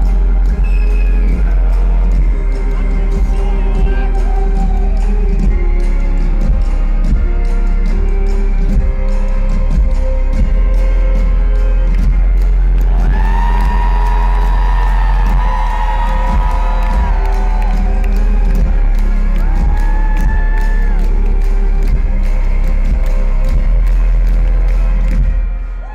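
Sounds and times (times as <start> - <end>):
live orchestral pop music: 0.0 - 25.9
crowd whooping and cheering: 2.8 - 5.5, 12.5 - 21.9, 25.0 - 25.9.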